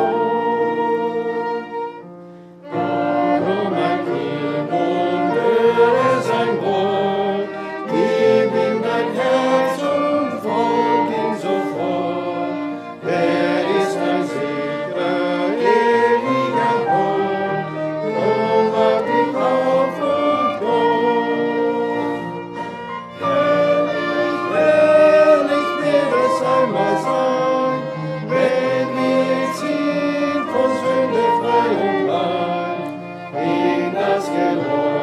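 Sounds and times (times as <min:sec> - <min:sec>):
congregation singing a hymn: 0:00.0 - 0:02.0, 0:02.6 - 0:35.0
flute: 0:00.0 - 0:35.0
piano: 0:00.0 - 0:35.0
violins: 0:00.0 - 0:35.0.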